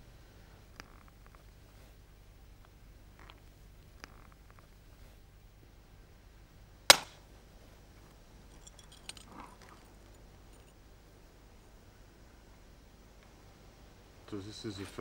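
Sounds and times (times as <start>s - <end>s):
hammer striking antler punch: 6.9s - 7.2s
flint and tools clicking: 8.5s - 10.7s.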